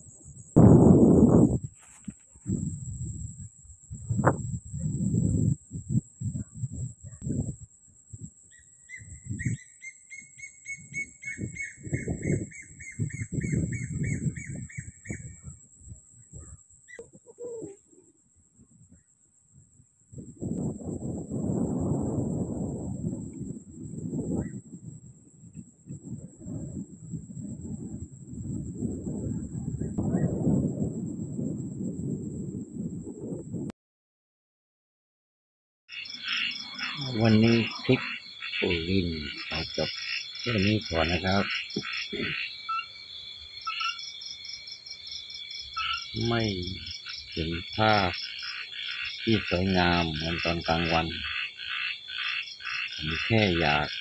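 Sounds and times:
high-pitched insect hum: 0.0 - 32.9, 35.9 - 54.0
wind buffeting microphone: 0.0 - 33.7, 36.5 - 42.4, 45.5 - 48.2
rapid trilling animal call: 35.9 - 43.0, 43.6 - 44.2, 45.6 - 54.0.

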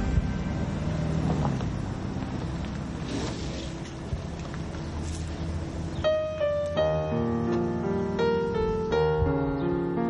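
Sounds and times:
car engine running low: 0.0 - 6.1
road noise: 0.0 - 10.0.

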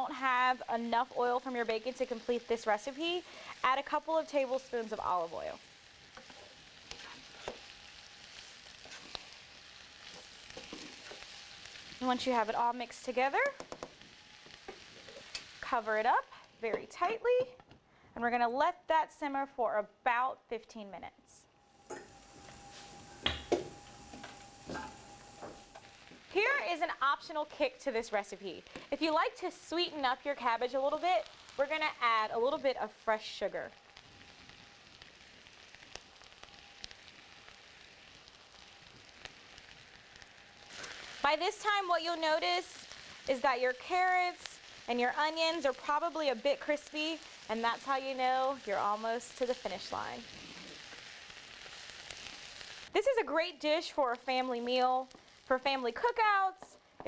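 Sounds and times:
vegetables sizzling in a skillet: 0.0 - 17.6, 21.6 - 56.8
spatula stirring in a pan: 1.6 - 12.2, 13.4 - 15.7, 42.7 - 45.2, 45.8 - 52.9.

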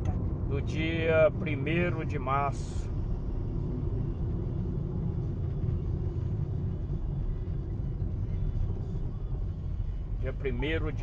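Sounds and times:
car engine and tyres rumbling: 0.0 - 11.0.

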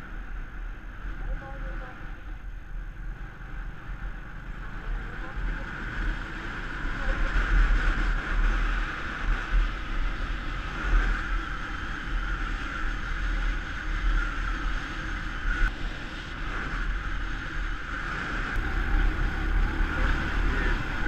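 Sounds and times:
motorcycle engine cruising: 0.0 - 21.0
road noise: 0.0 - 21.0.

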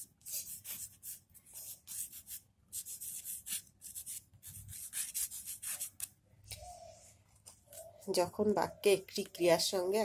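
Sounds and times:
chalk scratching on a hard surface: 0.0 - 6.1.

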